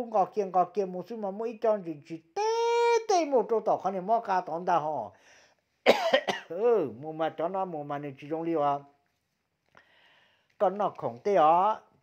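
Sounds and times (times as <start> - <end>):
person speaking: 0.0 - 5.2, 6.2 - 9.2, 10.6 - 12.0.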